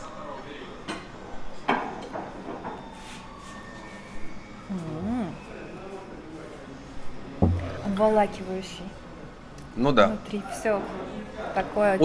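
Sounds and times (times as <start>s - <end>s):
person humming: 4.7s - 5.4s.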